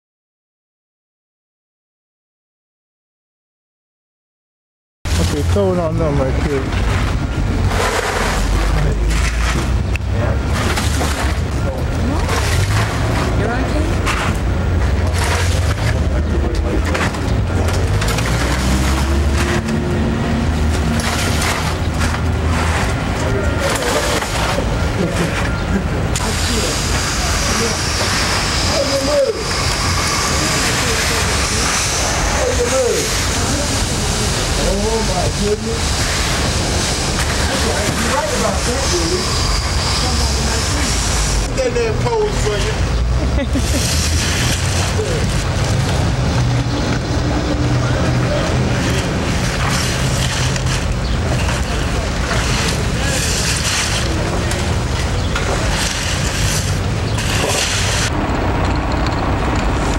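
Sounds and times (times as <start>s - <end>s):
indistinct voices: 5.1s - 59.9s
truck engine rumbling: 5.1s - 59.9s
wire carts clattering: 5.1s - 59.9s.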